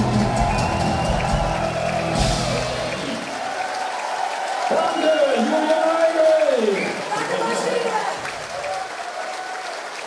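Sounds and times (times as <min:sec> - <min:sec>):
rock band playing: 0:00.0 - 0:03.2
crowd applauding and cheering: 0:00.0 - 0:10.0.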